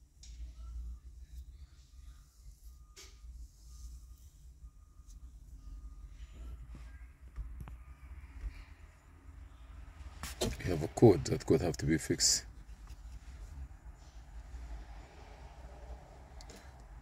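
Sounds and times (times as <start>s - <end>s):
faint low rumble: 0.0s - 17.0s.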